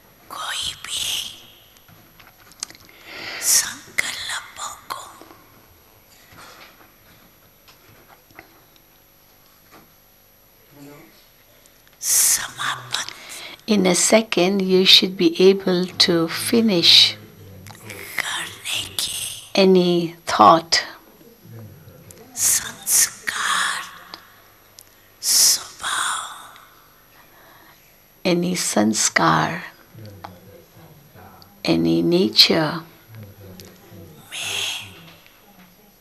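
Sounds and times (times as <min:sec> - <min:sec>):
low steady hum: 0:00.0 - 0:36.0
woman speaking slowly: 0:00.3 - 0:01.6, 0:03.4 - 0:05.4, 0:12.0 - 0:21.2, 0:22.1 - 0:24.4, 0:25.2 - 0:26.7, 0:28.2 - 0:29.9, 0:31.6 - 0:33.0, 0:33.6 - 0:36.0.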